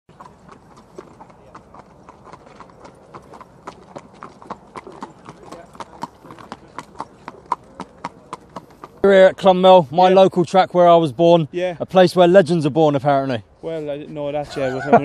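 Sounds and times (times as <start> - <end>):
horse hooves clopping on tarmac: 0.1 - 10.3.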